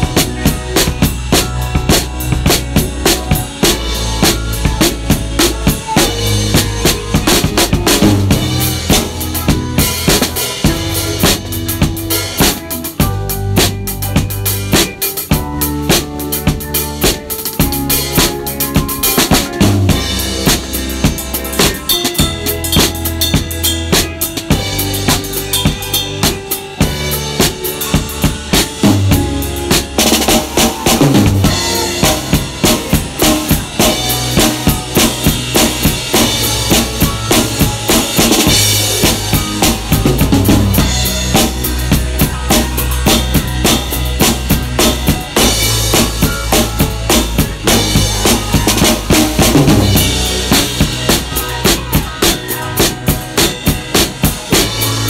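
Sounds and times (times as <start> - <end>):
band bass line: 0.0 - 55.0
funk drum kit groove: 0.0 - 55.0.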